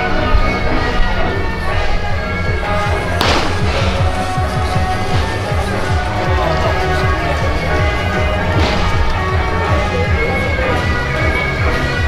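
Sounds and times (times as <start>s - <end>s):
sharp ringing crack: 3.2s - 4.0s.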